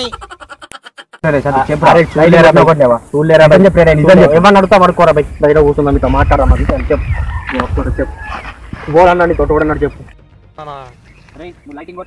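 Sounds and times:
wind rumble on microphone: 3.5 - 10.1.

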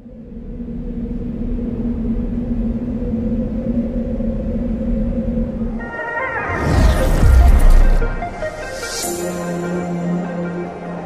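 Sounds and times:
low rumble: 0.0 - 10.4
deep soundtrack drone: 0.0 - 11.0.

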